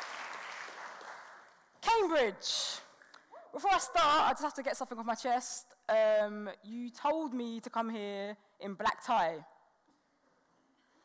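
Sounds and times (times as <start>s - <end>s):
audience applause: 0.0s - 1.6s.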